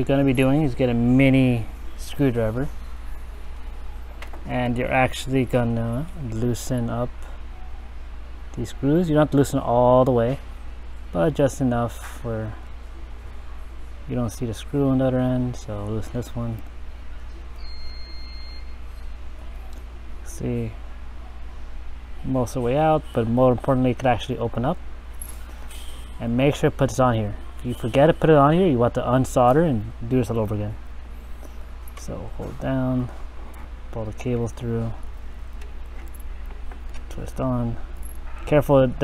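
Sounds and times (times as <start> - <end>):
steady low hum: 0.0 - 39.0.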